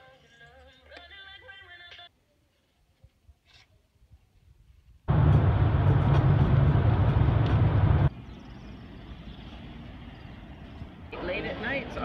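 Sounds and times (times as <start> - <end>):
steady outdoor background: 0.0 - 12.0
road and engine noise inside car: 5.1 - 10.3.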